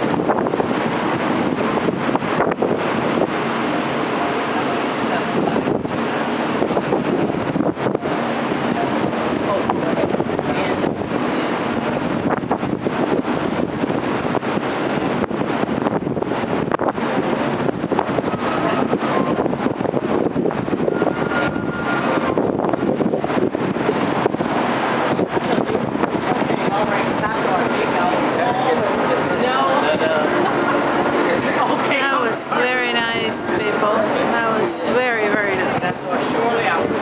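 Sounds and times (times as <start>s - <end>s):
boat running noise: 0.0s - 37.0s
wind on microphone: 0.0s - 37.0s
indistinct voices: 24.6s - 37.0s.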